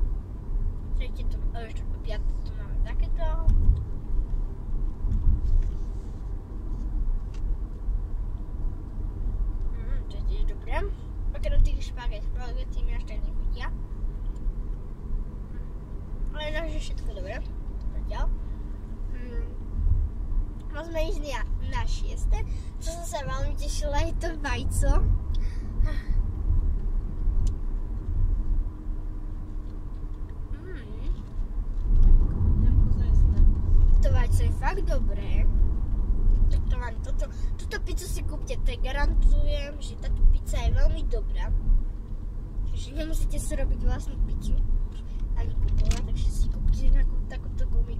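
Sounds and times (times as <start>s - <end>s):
car rumble from inside cabin: 0.0s - 47.9s.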